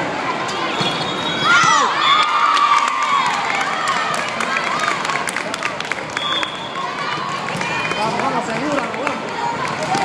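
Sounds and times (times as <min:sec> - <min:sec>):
murmur of large hall: 0:00.0 - 0:10.0
people shouting and cheering: 0:00.2 - 0:10.0.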